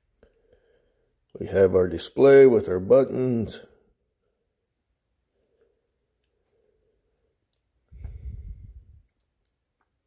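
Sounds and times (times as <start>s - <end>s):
low rumble: 8.0s - 9.1s.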